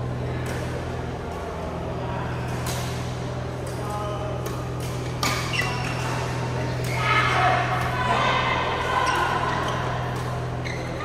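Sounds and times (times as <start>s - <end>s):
distant voices in a hall: 0.0s - 11.0s
steady low hum: 0.0s - 11.0s
shoe squeaks on court floor: 5.2s - 6.1s, 10.6s - 11.0s.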